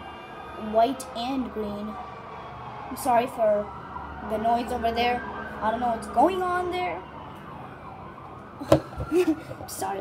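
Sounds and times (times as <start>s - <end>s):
distant police siren wailing: 0.0s - 10.0s.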